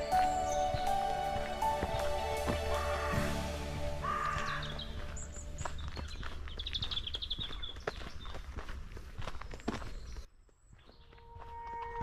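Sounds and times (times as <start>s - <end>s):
music with steady tones: 0.0s - 5.6s
footsteps on earth path: 0.0s - 12.0s.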